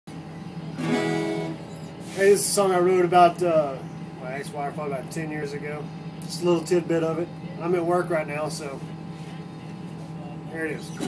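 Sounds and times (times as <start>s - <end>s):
acoustic guitar chord strummed: 0.8s - 2.2s.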